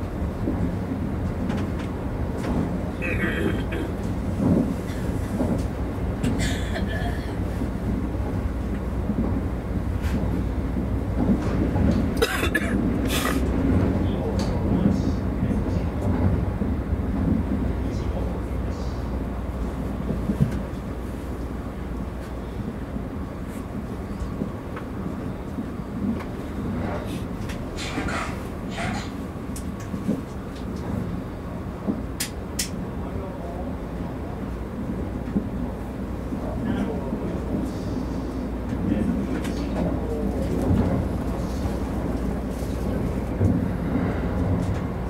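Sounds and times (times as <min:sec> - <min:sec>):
train wheels rumbling: 0:00.0 - 0:45.0.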